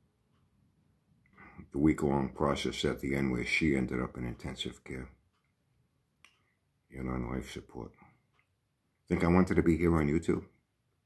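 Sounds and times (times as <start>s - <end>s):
man talking: 1.4s - 5.2s, 6.9s - 8.0s, 9.1s - 10.6s.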